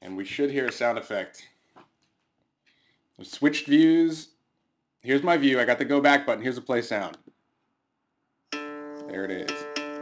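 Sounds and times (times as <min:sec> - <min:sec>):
acoustic guitar note ringing: 0:08.5 - 0:10.0.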